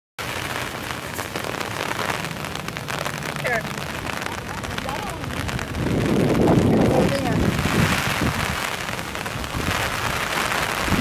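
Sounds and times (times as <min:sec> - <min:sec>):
steady rain hiss: 0:00.2 - 0:11.0.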